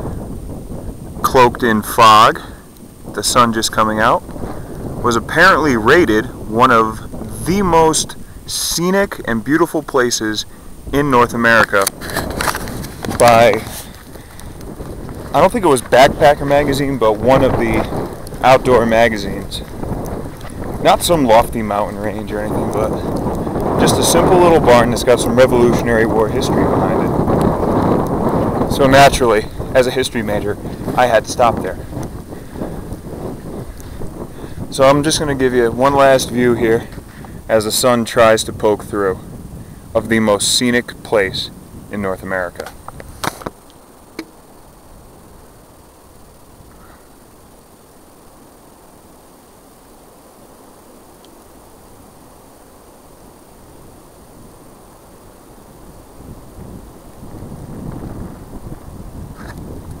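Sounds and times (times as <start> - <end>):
wind buffeting microphone: 0.0 - 48.9, 52.1 - 60.0.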